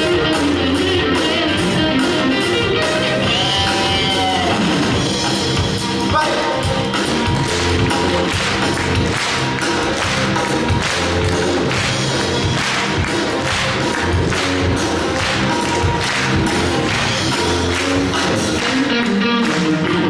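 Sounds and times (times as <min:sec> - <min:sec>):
live rock and roll band: 0:00.0 - 0:20.0.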